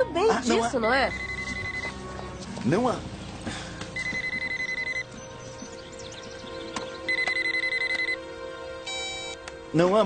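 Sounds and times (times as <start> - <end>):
phone ringing: 0.8 - 2.0, 4.0 - 5.1, 7.1 - 8.2, 8.9 - 9.4.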